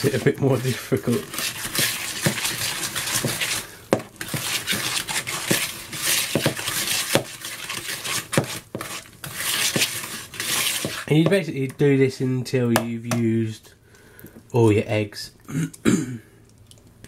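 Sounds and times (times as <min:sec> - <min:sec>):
wet batter scraping: 0:00.0 - 0:12.3.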